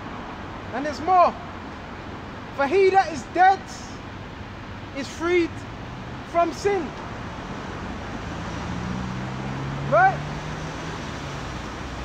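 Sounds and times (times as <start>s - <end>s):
road noise: 0.0s - 12.0s
vehicle engine humming: 0.0s - 12.0s.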